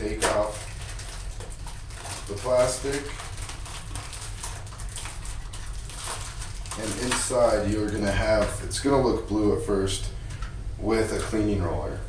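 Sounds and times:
plastic wrapper crinkling: 0.0s - 8.7s
low steady hum: 0.0s - 12.0s.

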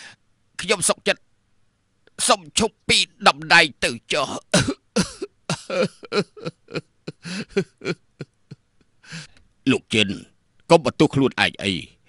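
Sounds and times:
narrator talking: 0.6s - 1.2s, 2.2s - 4.6s, 9.7s - 11.9s.

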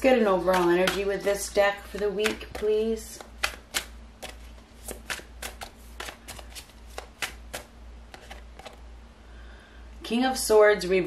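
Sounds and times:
cards being shuffled: 0.4s - 8.8s.

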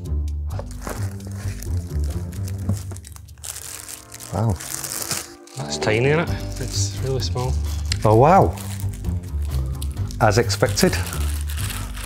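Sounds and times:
plastic wrapping crinkling: 0.6s - 12.0s.

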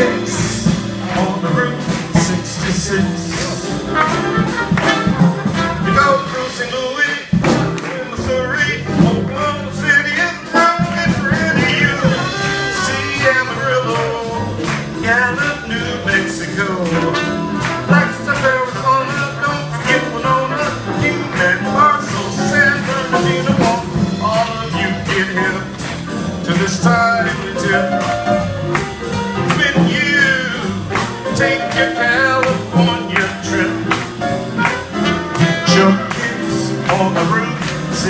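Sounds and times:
man singing: 0.0s - 28.5s, 29.2s - 38.0s
drums keeping a beat: 0.0s - 38.0s
piano: 0.0s - 38.0s.

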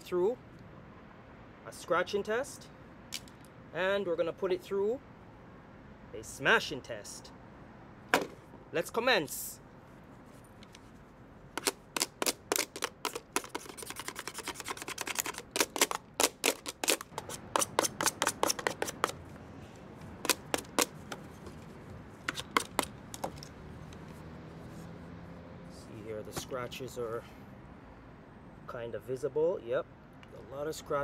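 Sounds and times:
metal blade scratching plastic: 11.6s - 19.2s.

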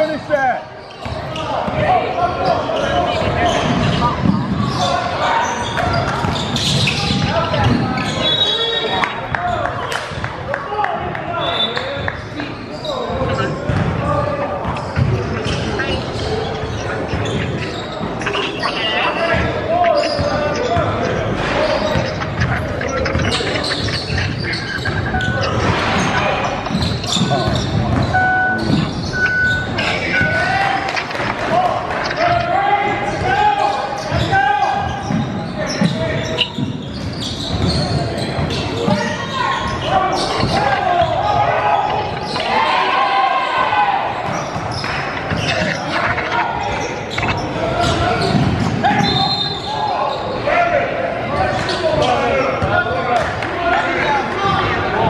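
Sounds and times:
indistinct voices: 0.0s - 55.0s
basketball bouncing on wooden floor: 26.6s - 28.1s.

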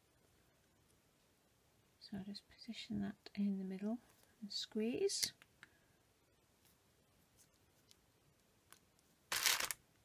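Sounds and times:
foil and paper crinkling: 9.3s - 9.8s.

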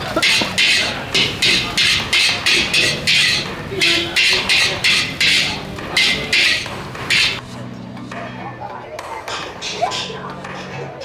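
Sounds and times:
spatula scraping a steel wok: 0.2s - 7.6s.

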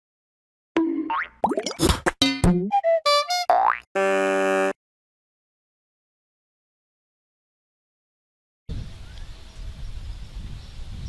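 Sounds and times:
springy boing sounds: 0.8s - 4.0s
buzzy held chord: 4.0s - 4.8s.

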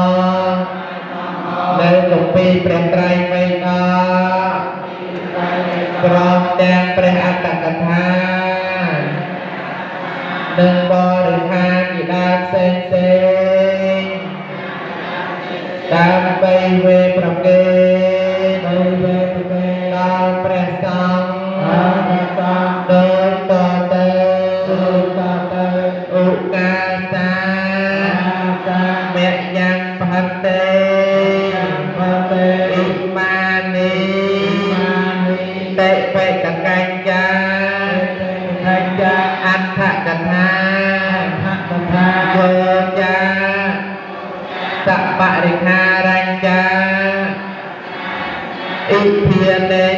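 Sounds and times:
solo voice chanting: 0.0s - 49.9s.

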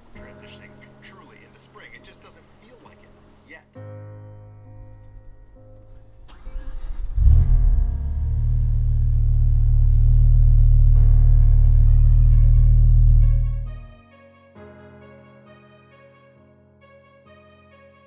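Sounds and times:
car engine starting and idling: 6.2s - 13.8s.

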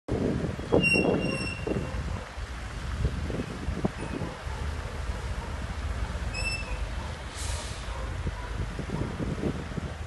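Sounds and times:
rumble of cars idling and passing: 0.1s - 10.0s
thin high squeal: 6.3s - 6.8s.

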